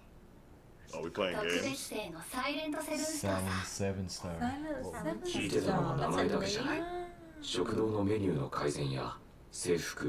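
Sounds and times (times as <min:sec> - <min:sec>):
person speaking dialogue: 0:00.9 - 0:02.0.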